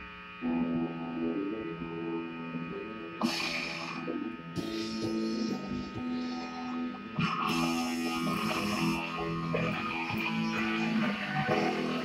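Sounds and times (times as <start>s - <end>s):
amplifier hum: 0.0s - 12.0s
electric guitar notes: 0.0s - 12.0s.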